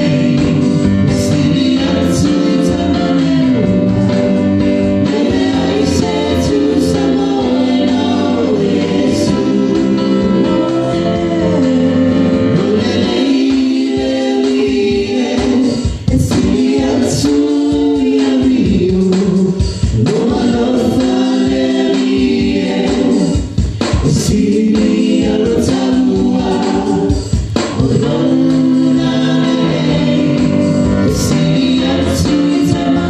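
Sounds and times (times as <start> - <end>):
group singing hymn in harmony: 0.0 - 33.0.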